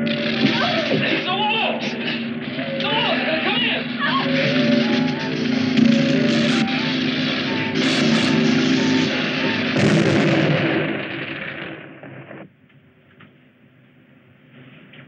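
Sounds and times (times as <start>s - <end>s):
sharp blasts: 0.0s - 12.5s
dense crackling noise: 0.0s - 15.0s.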